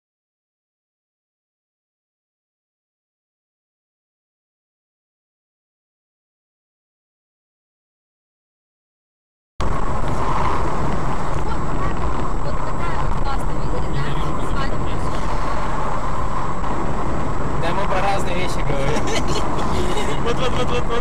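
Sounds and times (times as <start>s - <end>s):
car road and engine noise: 9.6s - 21.0s.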